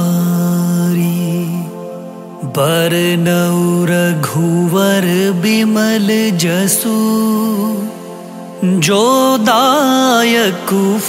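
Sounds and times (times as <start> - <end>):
devotional singing with sliding pitch: 0.0 - 11.0.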